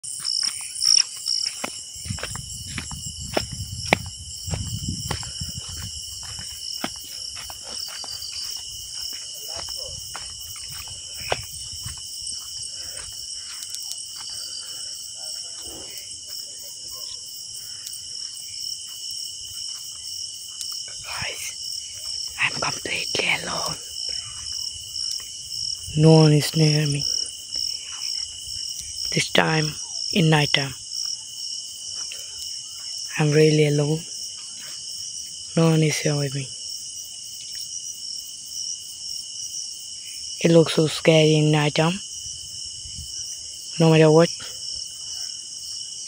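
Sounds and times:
crickets chirping: 0.0 - 46.0.

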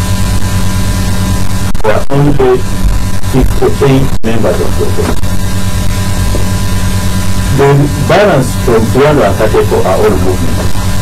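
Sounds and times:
electrical mains hum: 0.0 - 11.0
man speaking: 1.8 - 5.2, 7.5 - 10.7.

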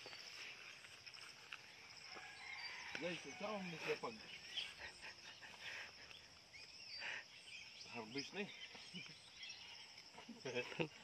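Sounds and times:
bird chirps: 0.0 - 11.0
high insect drone: 0.0 - 11.0.

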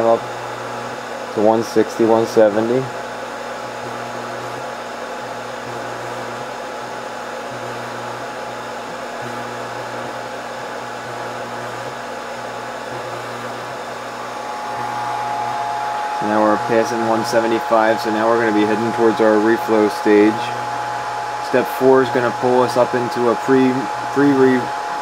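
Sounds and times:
hot-air blower rushing: 0.0 - 25.0
low hum: 14.1 - 25.0
steady higher tone: 14.1 - 25.0.

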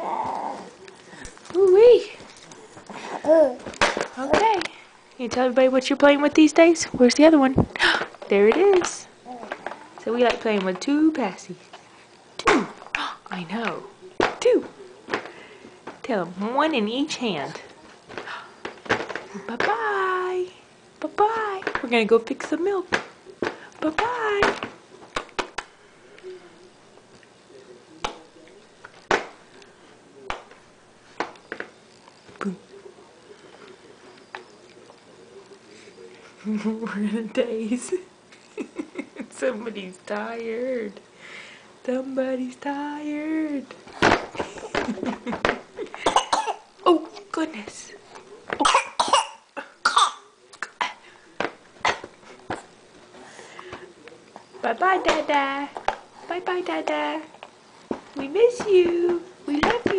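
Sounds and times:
baby vocal sounds: 0.0 - 0.8, 2.9 - 4.4, 9.2 - 10.0
cough-like voice bursts: 46.0 - 46.6, 48.6 - 50.3.

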